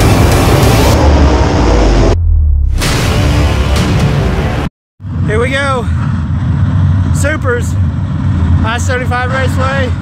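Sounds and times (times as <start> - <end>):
race car engines rumbling: 3.8 - 10.0.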